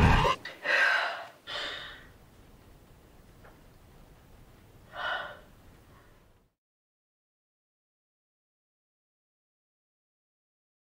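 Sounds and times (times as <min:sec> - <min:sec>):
faint room hiss: 0:00.0 - 0:06.6
woman gasping: 0:00.2 - 0:02.1, 0:04.9 - 0:05.5.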